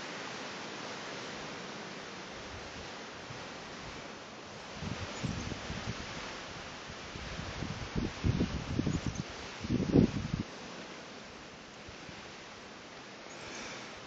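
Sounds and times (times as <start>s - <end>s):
wind hiss: 0.0s - 14.0s
wind buffeting microphone: 4.7s - 10.5s.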